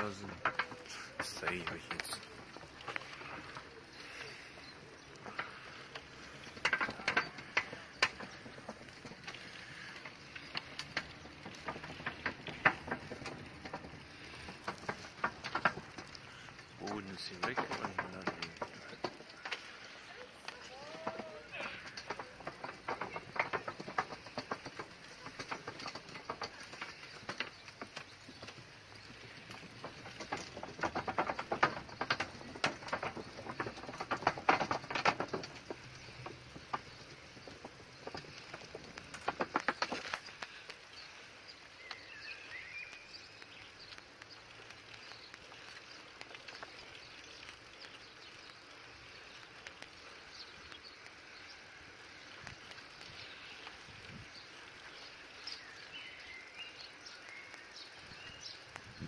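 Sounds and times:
outdoor ambience: 0:00.0 - 0:59.0
bird chirps: 0:39.9 - 0:49.5.

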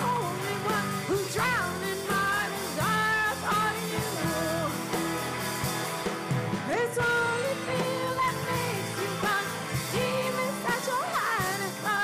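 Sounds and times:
drums: 0:00.0 - 0:12.0
electric guitars: 0:00.0 - 0:12.0
keyboard: 0:00.0 - 0:12.0
live rock band playing: 0:00.0 - 0:12.0.

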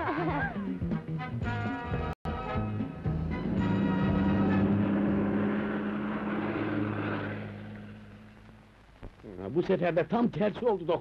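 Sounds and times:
bus engine humming: 0:02.3 - 0:08.8.

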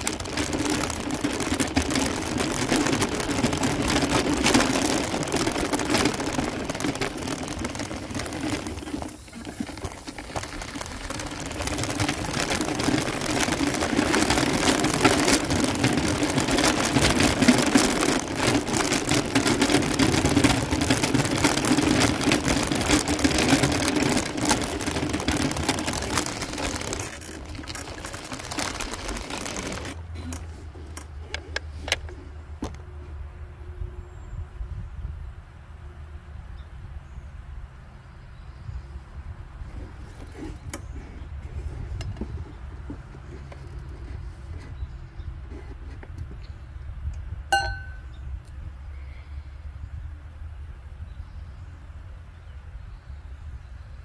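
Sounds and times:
wheels rolling on gravel: 0:00.0 - 0:32.8, 0:39.5 - 0:48.2.

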